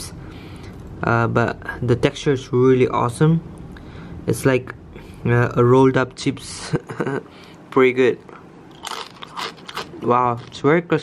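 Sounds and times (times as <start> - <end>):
chip crunching when chewed: 8.7 - 10.6.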